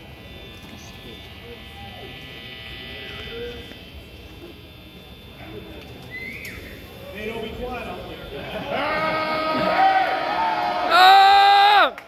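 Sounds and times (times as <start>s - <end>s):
faint crowd voices: 0.0s - 12.0s
guitar amplifier buzz and hum: 0.0s - 12.0s.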